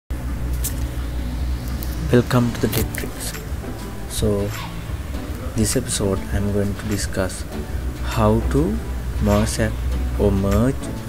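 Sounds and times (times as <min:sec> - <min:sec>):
steady low rumble: 0:00.1 - 0:11.0.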